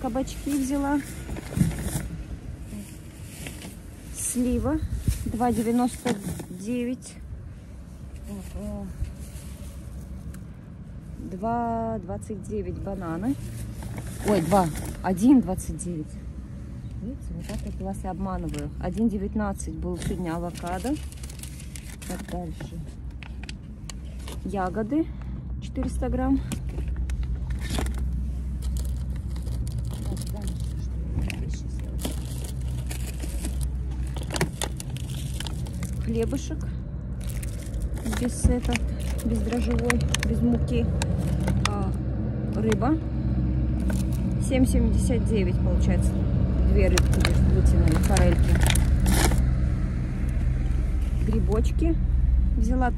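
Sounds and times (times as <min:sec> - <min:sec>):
plastic bags rustling: 0:00.0 - 0:07.0, 0:13.0 - 0:15.5, 0:17.3 - 0:24.6, 0:26.6 - 0:42.2, 0:43.7 - 0:44.4, 0:46.8 - 0:49.6
wind rumble on microphone: 0:00.0 - 0:18.9.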